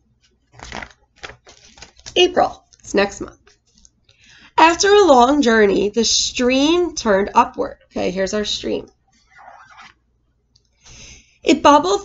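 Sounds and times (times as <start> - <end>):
paper page rustling: 0.2 - 2.2, 9.2 - 10.0.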